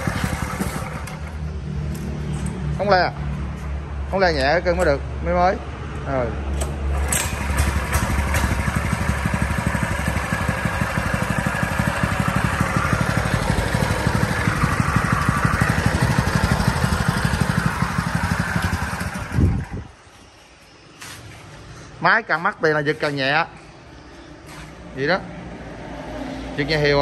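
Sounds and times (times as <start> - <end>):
petrol engine running: 0.0 - 2.7, 6.5 - 20.0.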